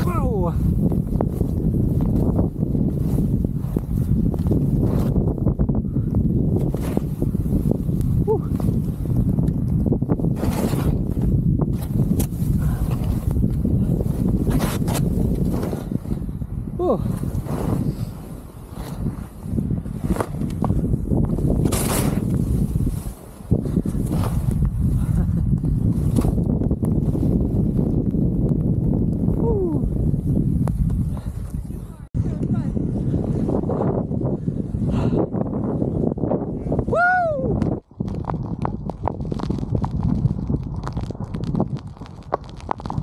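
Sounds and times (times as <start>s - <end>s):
wind rushing over microphone: 0.0s - 43.0s.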